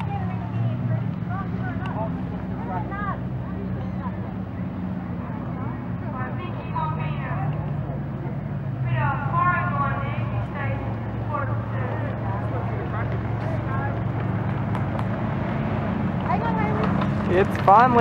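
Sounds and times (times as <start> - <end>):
car engines running at low speed: 0.0 - 18.0
spectators chattering: 0.0 - 18.0.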